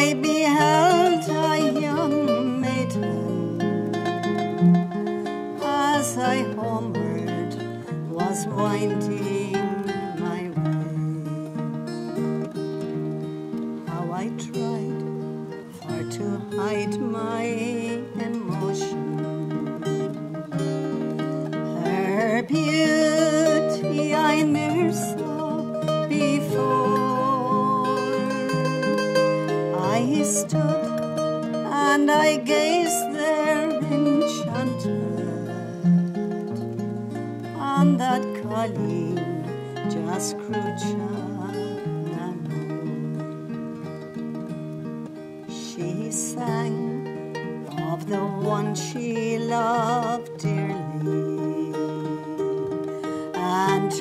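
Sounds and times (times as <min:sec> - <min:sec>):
woman singing: 0:00.0 - 0:44.1, 0:45.2 - 0:54.0
acoustic guitar strumming: 0:00.0 - 0:54.0
mandolin melody: 0:00.0 - 0:54.0.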